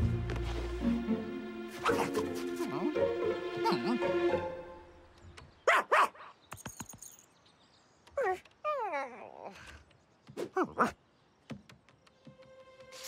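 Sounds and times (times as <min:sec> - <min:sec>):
background music: 0:00.0 - 0:05.2, 0:11.9 - 0:13.0.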